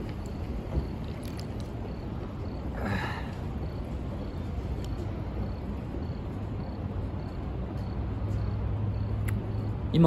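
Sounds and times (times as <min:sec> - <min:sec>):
wind buffeting microphone: 0:00.0 - 0:09.9
faint clicks: 0:04.8 - 0:05.1.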